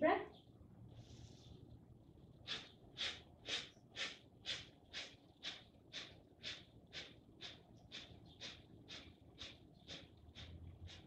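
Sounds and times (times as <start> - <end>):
forceful exhales through nose: 2.5 - 9.6.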